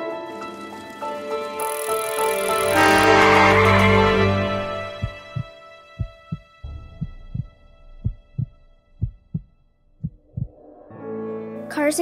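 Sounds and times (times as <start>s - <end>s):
sustained music chord: 1.6s - 7.9s
heartbeat-like double thump: 5.0s - 10.6s.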